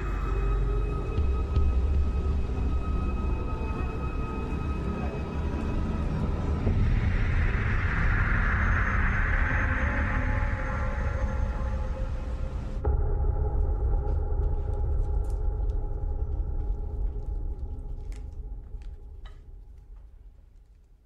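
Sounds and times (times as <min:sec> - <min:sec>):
deep low drone: 0:00.0 - 0:20.6.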